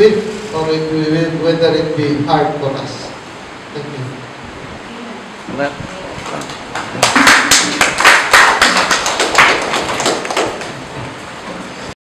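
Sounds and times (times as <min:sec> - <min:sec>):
people clapping: 0:06.2 - 0:10.9.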